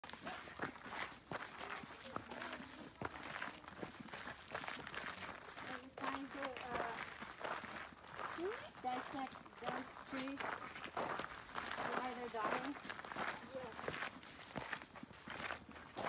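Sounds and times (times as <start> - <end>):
footsteps on rocky dirt trail: 0.0 - 16.0
indistinct voices talking: 1.4 - 4.1.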